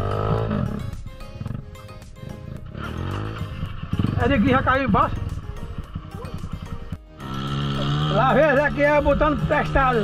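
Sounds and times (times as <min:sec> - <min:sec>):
background music: 0:00.0 - 0:10.0
dirt bike engine running unevenly: 0:00.0 - 0:10.0.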